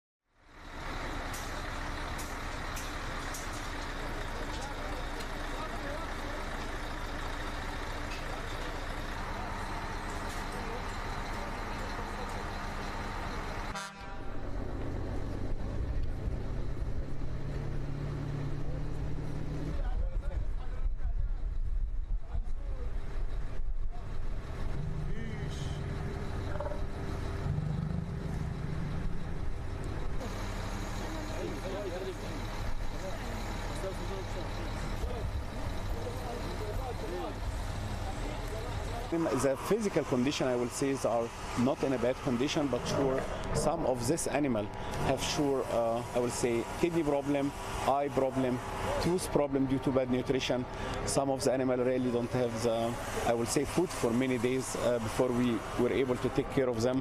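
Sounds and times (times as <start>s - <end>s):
truck engine idling: 0.4s - 57.0s
indistinct voices: 24.2s - 29.4s.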